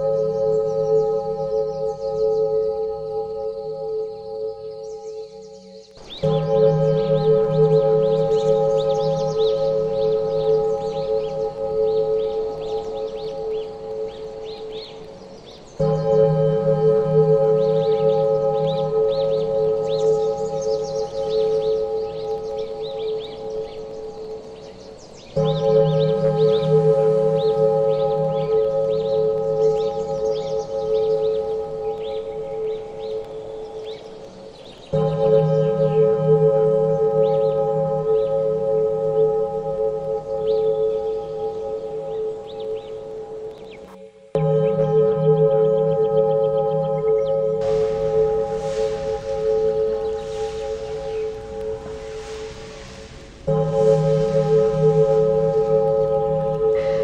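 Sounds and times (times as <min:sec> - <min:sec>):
singing bowl ringing: 0:00.0 - 0:43.5, 0:44.4 - 0:57.0.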